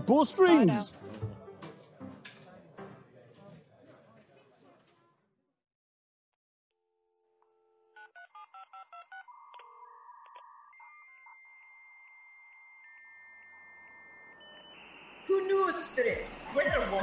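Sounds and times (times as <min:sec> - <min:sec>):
phone line tones: 0:07.5 - 0:15.4
telephone keypad tones: 0:08.0 - 0:12.0.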